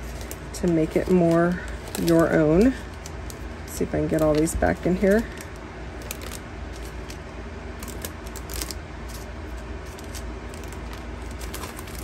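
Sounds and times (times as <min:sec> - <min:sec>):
cellophane bag crinkling: 0:00.0 - 0:12.0.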